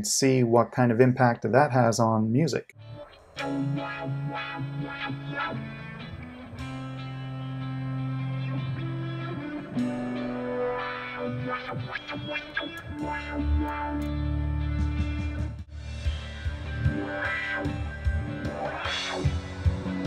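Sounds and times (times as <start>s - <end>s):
guitar-led instrumental music: 2.8s - 20.0s
wah-like filter sweep: 3.4s - 6.9s, 10.3s - 15.4s.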